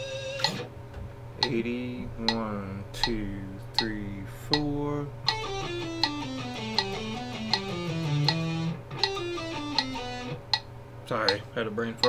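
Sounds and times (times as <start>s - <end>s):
electric guitar playing scale: 0.0s - 0.8s, 4.5s - 10.6s
metronome clicking: 0.2s - 0.7s, 1.4s - 1.6s, 2.2s - 3.2s, 3.8s - 11.4s.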